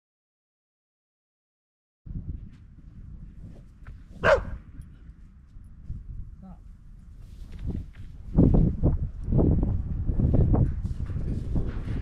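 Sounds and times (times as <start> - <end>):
dog barking: 4.2 - 4.6.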